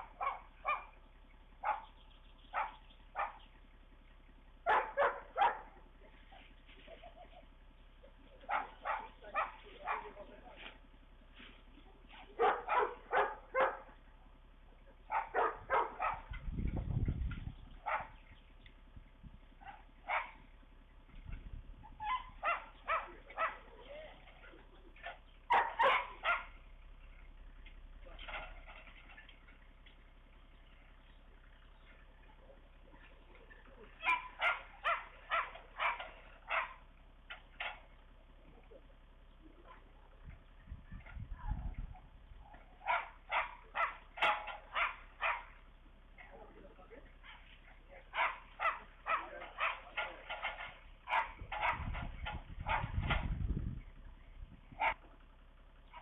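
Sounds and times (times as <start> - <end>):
dog barking: 0.0 - 1.0, 1.6 - 3.5, 4.6 - 5.8, 8.5 - 10.3, 12.3 - 14.0, 15.0 - 16.4, 17.8 - 18.2, 19.6 - 20.5, 22.0 - 23.8, 25.0 - 26.6, 33.8 - 36.9, 42.7 - 45.6, 48.0 - 52.0, 52.6 - 53.2
low rumbles: 0.0 - 56.0.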